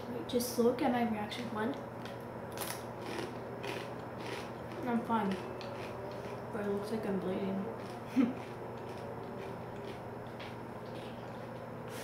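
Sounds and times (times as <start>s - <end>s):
tortilla chip crunching while chewed: 2.0s - 6.5s, 7.8s - 12.0s.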